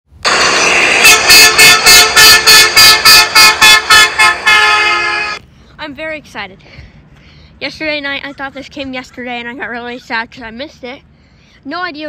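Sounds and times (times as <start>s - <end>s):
loud vehicle horn: 0.3s - 5.4s.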